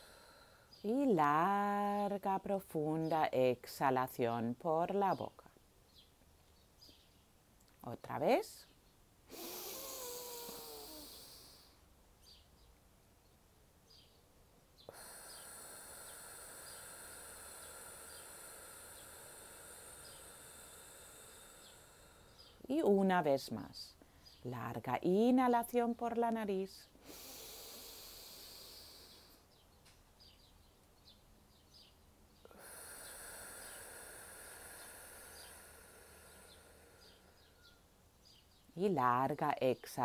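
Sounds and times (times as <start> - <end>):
person inhaling through nose: 0.0 - 0.8, 9.3 - 11.8, 14.9 - 22.6, 27.0 - 29.4, 32.5 - 37.8.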